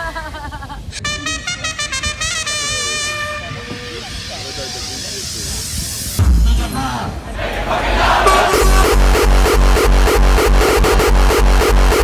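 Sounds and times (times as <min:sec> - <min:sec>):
voices: 0:00.0 - 0:09.0
music: 0:01.0 - 0:04.9, 0:06.0 - 0:12.0
pitched tones stepping up and down: 0:08.2 - 0:12.0.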